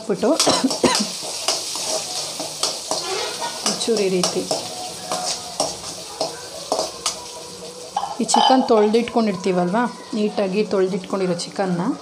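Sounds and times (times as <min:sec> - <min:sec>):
onion sizzling in hot oil: 0:00.0 - 0:12.0
ladle scraping metal pan: 0:01.1 - 0:03.9.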